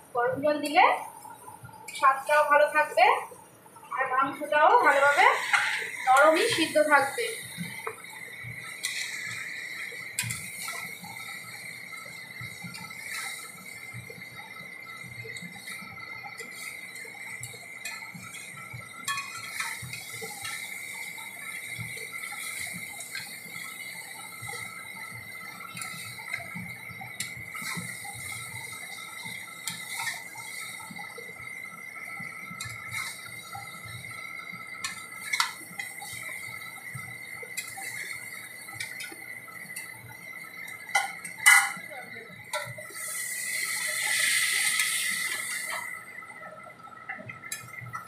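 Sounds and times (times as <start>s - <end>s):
curry sizzling in a pan: 0.0s - 48.0s
spatula scraping and tapping pan: 5.2s - 8.0s, 8.8s - 9.4s, 10.2s - 11.0s, 16.4s - 20.7s, 25.6s - 30.9s, 32.6s - 33.8s, 34.8s - 36.4s, 37.0s - 38.2s, 40.7s - 41.9s.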